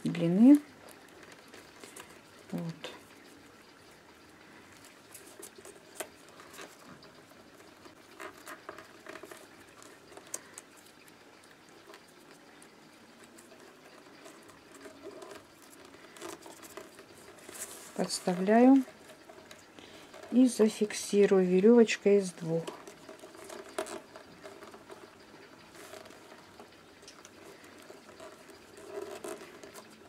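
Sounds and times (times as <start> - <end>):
newspaper tubes rustling: 0.0 - 3.6, 4.4 - 30.0.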